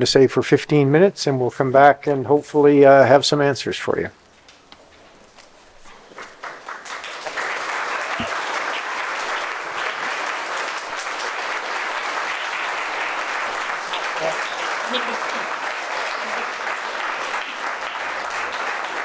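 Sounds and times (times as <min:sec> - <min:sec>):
voices: 0:00.0 - 0:04.2, 0:11.9 - 0:18.8
audience applauding: 0:05.8 - 0:19.0.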